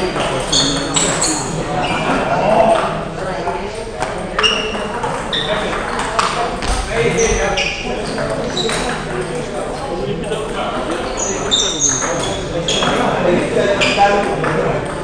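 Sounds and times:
indistinct chatter in hall: 0.0 - 15.0.

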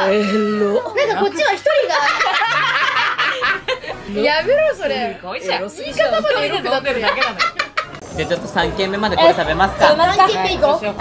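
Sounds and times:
group of women laughing: 1.9 - 4.1, 6.9 - 8.0.

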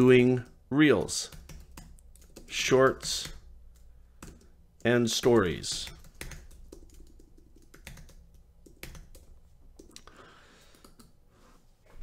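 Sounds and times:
typing on computer keyboard: 1.2 - 11.2.

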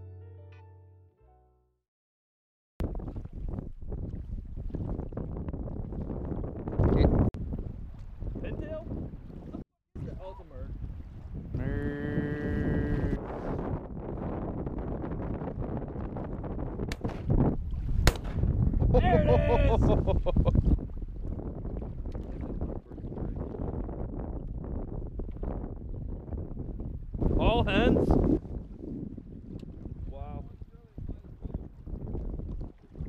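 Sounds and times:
choppy sea water: 2.8 - 33.0
wind buffeting microphone: 2.8 - 33.0
person calling out: 11.6 - 13.2, 19.0 - 19.9.

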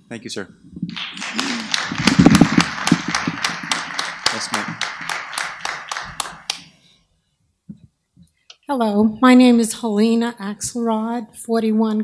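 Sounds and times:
audience applauding: 0.9 - 6.8.

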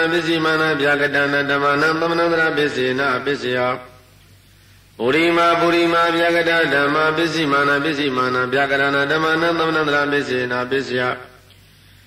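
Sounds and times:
man chanting: 0.0 - 4.0, 5.0 - 11.4.

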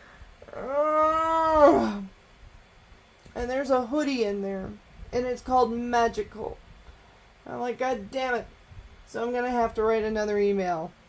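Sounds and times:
woman whining groan: 0.4 - 2.1.

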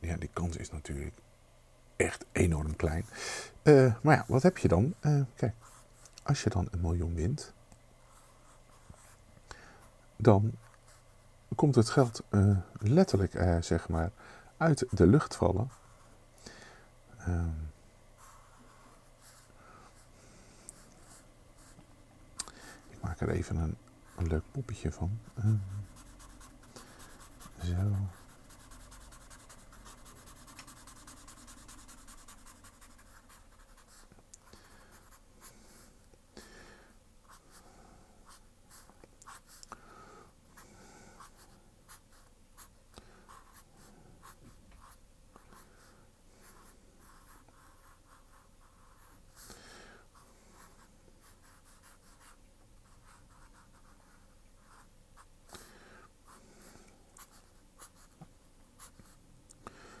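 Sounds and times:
pen drawing on paper: 25.5 - 34.1.

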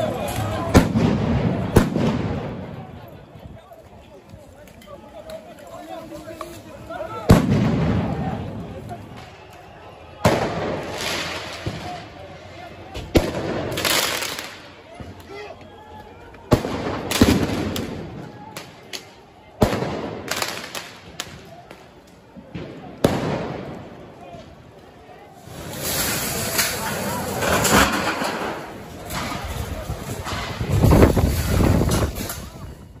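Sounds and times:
crowd shouting: 0.0 - 30.6
loud explosive bangs with echo: 7.3 - 8.4.

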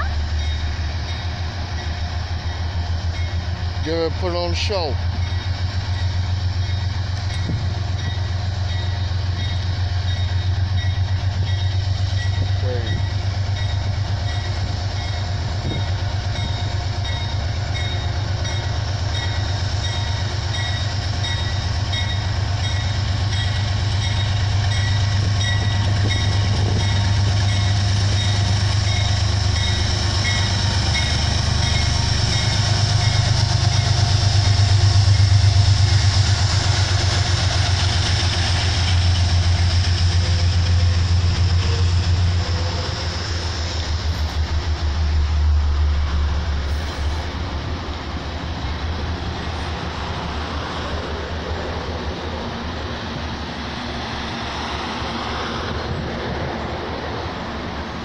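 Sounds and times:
locomotive bell ringing: 0.0 - 36.0
diesel locomotive engine humming: 0.0 - 58.0.

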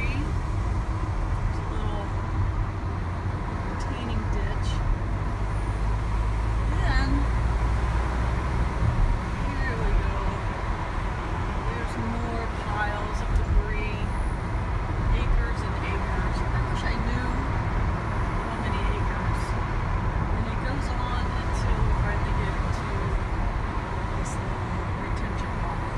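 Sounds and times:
tyre and engine rumble: 0.0 - 25.9.

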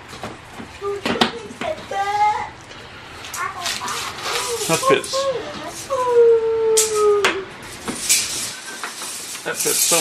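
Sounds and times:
howl-like vocal call: 5.2 - 7.5.

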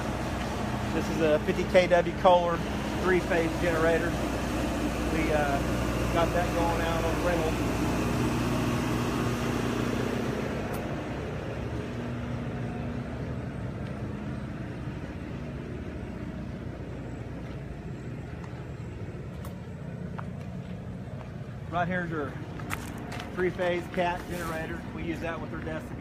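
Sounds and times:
low mechanical hum: 0.0 - 26.0
road traffic rumble: 0.0 - 26.0.

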